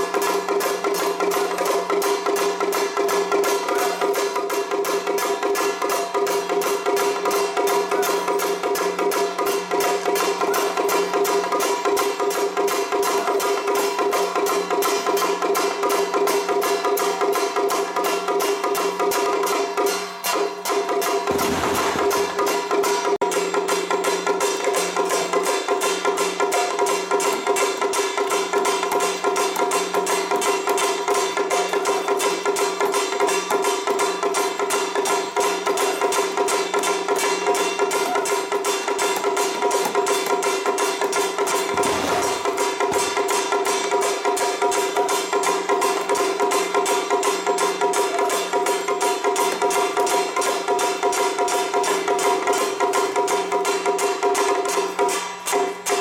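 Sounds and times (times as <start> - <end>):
drum beating: 21.1 - 23.5, 37.0 - 45.3
gongs ringing: 41.2 - 43.5.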